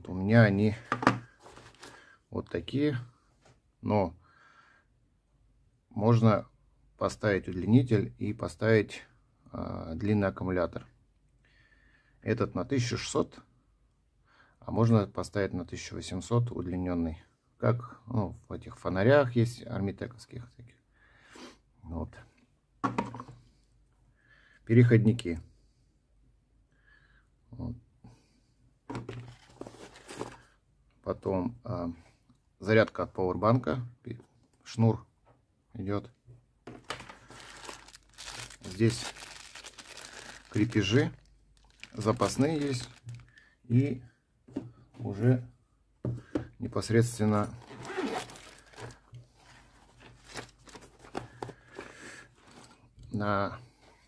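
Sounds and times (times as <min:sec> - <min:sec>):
rustling in a nylon case: 0:01.2 - 0:02.0, 0:29.0 - 0:30.5, 0:36.7 - 0:43.4, 0:47.3 - 0:52.9
plastic bag crinkling: 0:36.7 - 0:43.4, 0:47.7 - 0:51.7.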